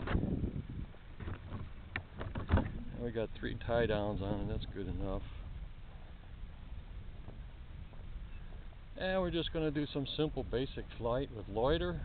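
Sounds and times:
handling and wind rumble: 0.0s - 12.0s.

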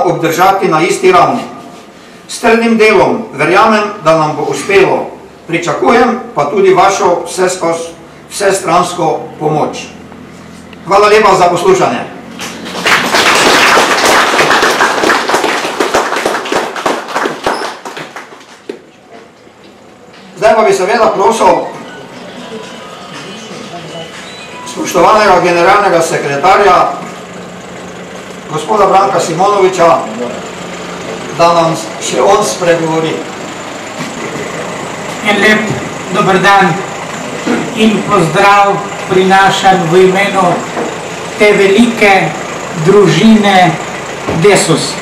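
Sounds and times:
steady background noise: 0.0s - 45.0s
audience applauding: 12.6s - 18.8s.

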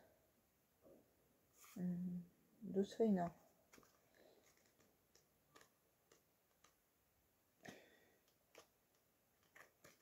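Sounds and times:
paper sheets ticking: 3.7s - 6.8s, 8.2s - 10.0s.

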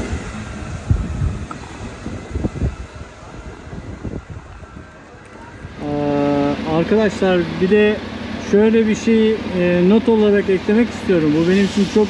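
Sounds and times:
wind buffeting microphone: 0.0s - 6.5s
low city rumble: 0.0s - 12.0s.

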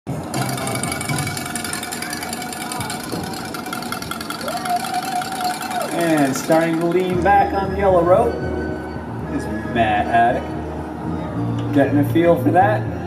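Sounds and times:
rapid mechanical rattle: 0.1s - 7.4s
faint voices: 0.1s - 8.4s.

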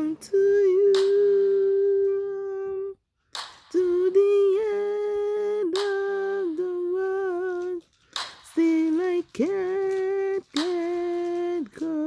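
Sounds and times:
woman humming wordless notes: 0.0s - 3.0s.

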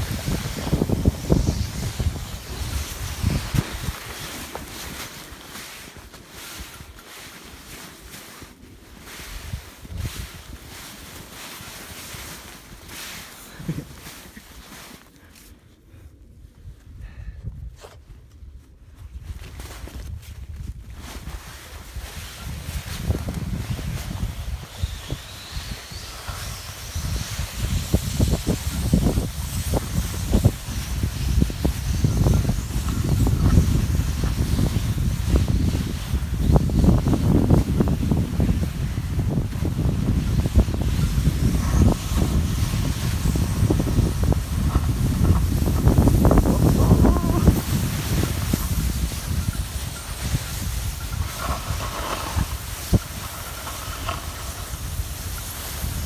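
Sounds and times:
rumble on microphone: 0.0s - 5.8s, 15.9s - 56.0s
snow hissing and crunching: 0.0s - 56.0s.

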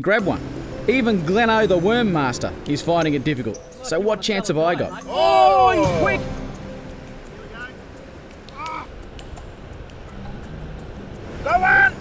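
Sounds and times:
crow cawing: 8.5s - 8.9s.

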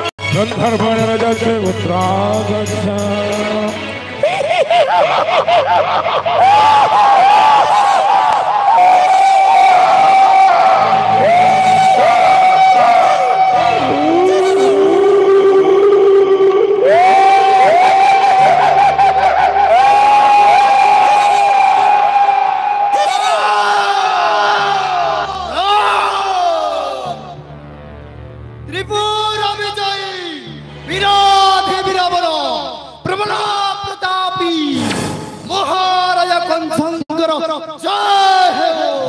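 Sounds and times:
voices giving drawn-out shouts: 4.9s - 27.4s
music with low bass: 24.8s - 29.7s.

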